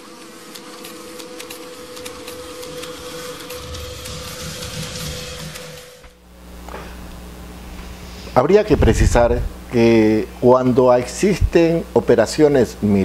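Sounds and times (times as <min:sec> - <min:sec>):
low pulsing beat: 0:08.7 - 0:09.6.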